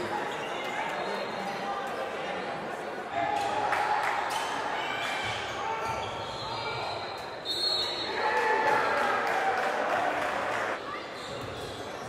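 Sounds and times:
indistinct crowd voices: 0:00.0 - 0:12.0.

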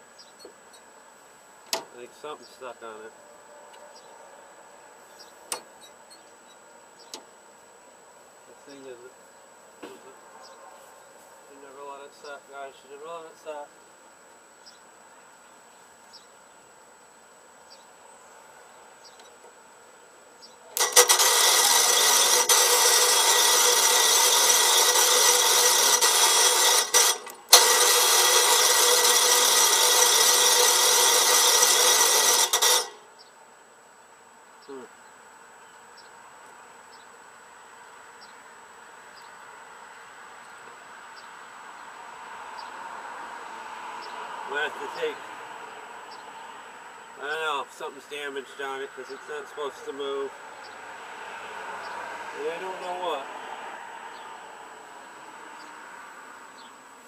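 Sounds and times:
engine starter cranking: 0:05.5 - 0:05.9, 0:20.7 - 0:33.1.

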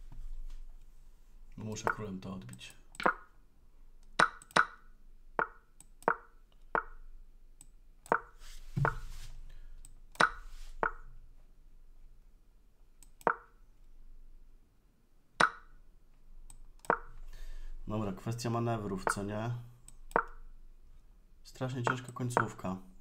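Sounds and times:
chess move taps: 0:03.0 - 0:03.3, 0:04.2 - 0:04.8, 0:05.4 - 0:07.0, 0:08.1 - 0:09.0, 0:10.2 - 0:11.1, 0:13.1 - 0:13.6, 0:15.4 - 0:15.7, 0:16.8 - 0:17.2, 0:19.0 - 0:19.3, 0:21.8 - 0:22.7.

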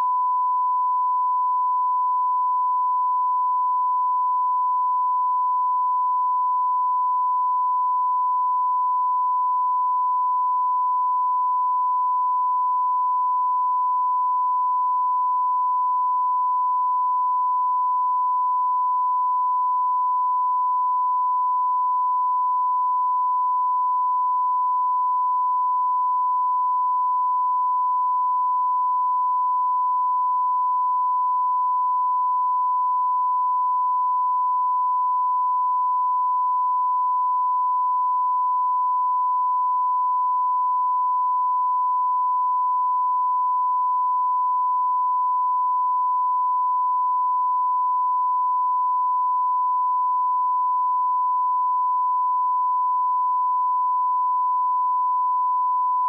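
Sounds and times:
steady sine tone: 0:00.0 - 0:56.0.

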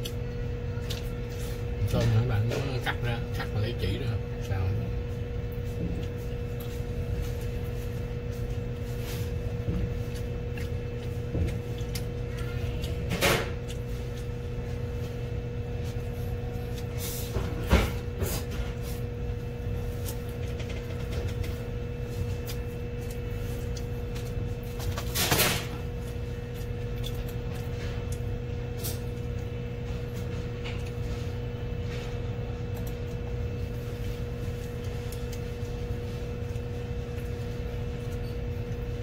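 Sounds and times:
low electrical hum: 0:00.0 - 0:39.0.

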